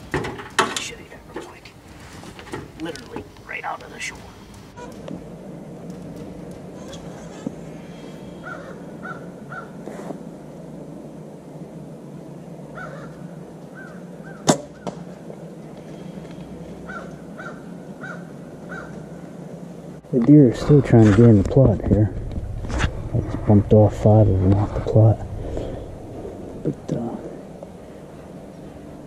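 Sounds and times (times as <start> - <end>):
bow shot: 14.4 - 15.0.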